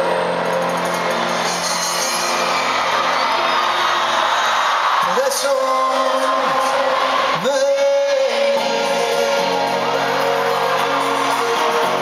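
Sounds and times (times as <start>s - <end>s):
crowd noise: 0.0s - 12.0s
live pop band playing: 0.0s - 12.0s.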